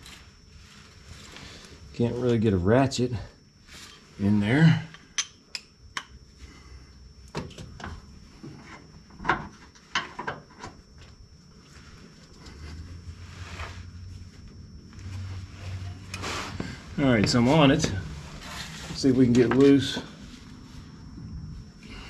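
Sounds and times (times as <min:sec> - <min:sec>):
low steady hum: 0:00.0 - 0:22.0.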